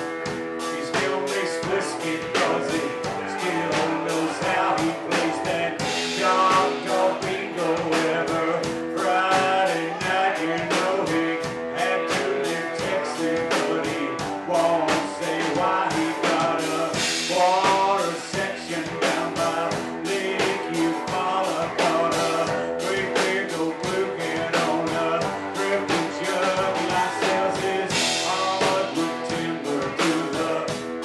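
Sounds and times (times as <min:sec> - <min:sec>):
rock band playing: 0:00.0 - 0:31.0.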